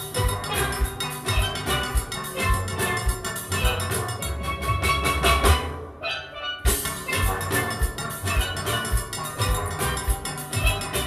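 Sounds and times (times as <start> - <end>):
drum kit and percussion beat: 0.0 - 11.0
steel band playing: 0.0 - 11.0.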